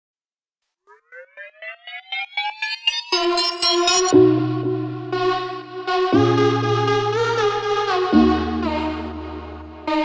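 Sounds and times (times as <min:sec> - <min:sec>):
synthesizer riser pulsing upward: 0:00.7 - 0:07.6
sustained synth chord: 0:00.9 - 0:10.0.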